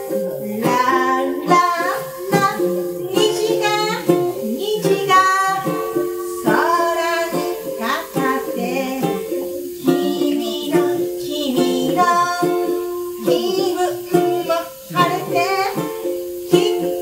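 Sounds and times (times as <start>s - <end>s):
ukulele strumming: 0.0s - 17.0s
woman singing: 0.0s - 17.0s.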